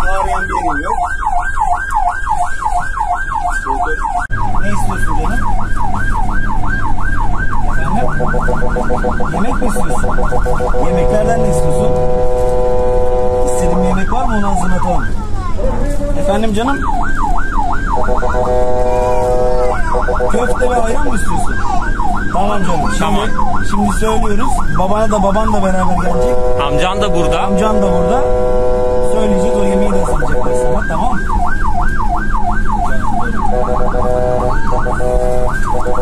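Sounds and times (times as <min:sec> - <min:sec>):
ambulance siren: 0:00.0 - 0:36.0.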